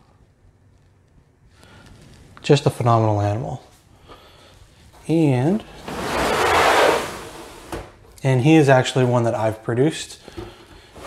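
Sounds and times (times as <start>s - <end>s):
plastic tub scraping along shelf: 5.7s - 7.9s.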